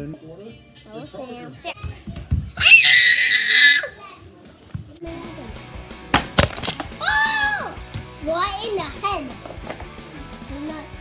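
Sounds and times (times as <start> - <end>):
child screaming: 2.6 - 4.0, 7.0 - 7.8.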